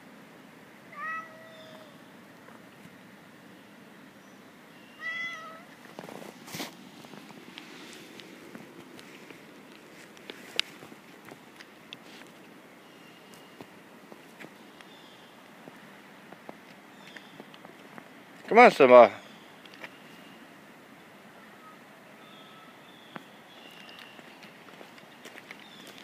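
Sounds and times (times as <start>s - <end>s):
cat meowing: 0.9s - 2.0s, 4.9s - 5.7s.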